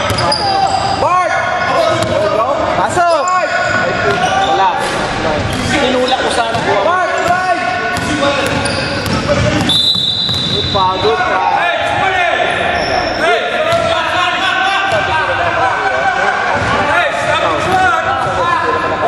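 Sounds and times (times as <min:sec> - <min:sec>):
sneakers squeaking on wooden floor: 0:00.0 - 0:02.4, 0:03.1 - 0:11.6, 0:12.5 - 0:15.1
basketball bouncing: 0:06.4 - 0:10.7, 0:13.7 - 0:14.0
referee whistle: 0:09.6 - 0:11.2.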